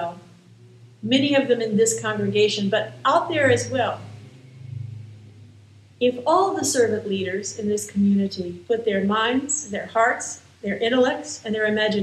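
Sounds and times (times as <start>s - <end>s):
low steady hum: 0.0s - 12.0s
brief rumble: 2.0s - 5.6s.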